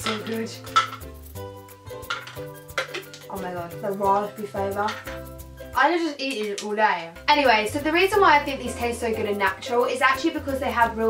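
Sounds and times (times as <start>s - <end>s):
plastic bottle clicks and rattles: 0.0s - 1.1s, 1.9s - 3.5s, 4.8s - 5.2s, 6.2s - 6.8s
soft background music: 0.0s - 11.0s.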